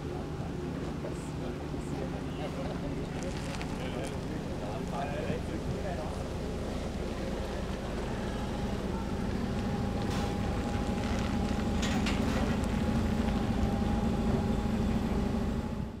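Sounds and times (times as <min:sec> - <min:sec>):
coach diesel engine humming: 0:00.0 - 0:16.0.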